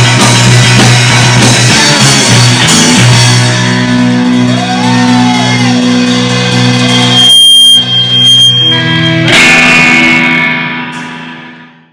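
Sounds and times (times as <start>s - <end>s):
high whine: 0.0s - 11.7s
rock band distorted guitar chords: 0.0s - 11.9s.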